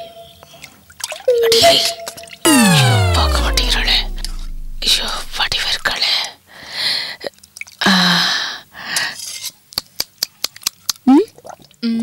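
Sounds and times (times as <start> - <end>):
comic descending tone: 2.5 - 5.9.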